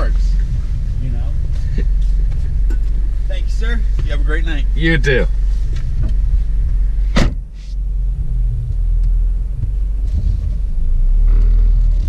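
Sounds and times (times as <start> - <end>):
car engine idling: 0.0 - 12.0
car door shutting: 7.0 - 7.6.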